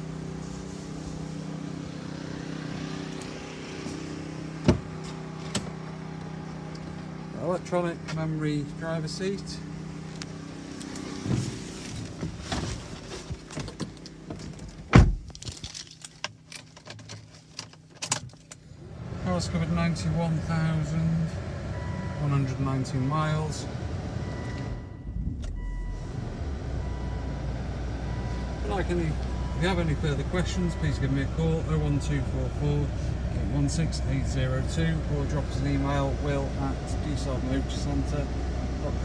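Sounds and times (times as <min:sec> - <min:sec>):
diesel engine idling: 0:18.8 - 0:39.0.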